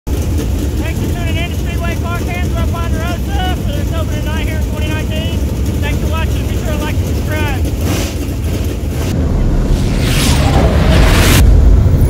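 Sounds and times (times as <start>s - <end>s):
race car engines rumbling: 0.1s - 12.0s
man talking: 0.8s - 7.7s.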